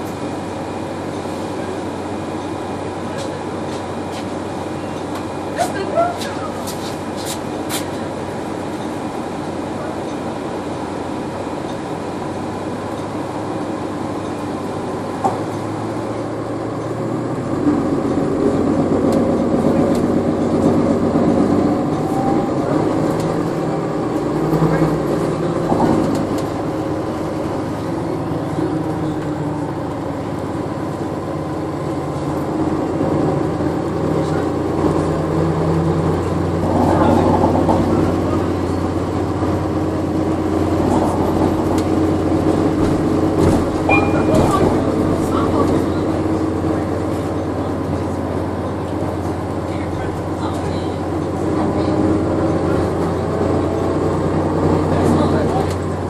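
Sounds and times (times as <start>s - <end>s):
bus engine drone: 0.0s - 56.0s
passengers' voices: 0.0s - 56.0s.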